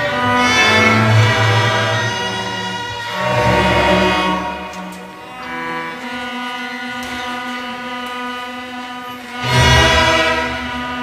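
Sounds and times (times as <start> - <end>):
strings holding a chord: 0.0 - 3.8.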